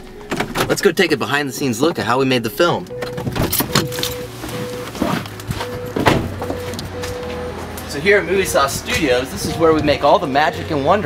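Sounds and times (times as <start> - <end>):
car door shutting: 2.9 - 7.4.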